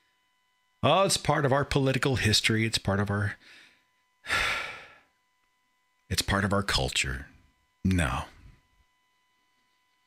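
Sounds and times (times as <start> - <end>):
person breathing in: 3.4 - 5.1.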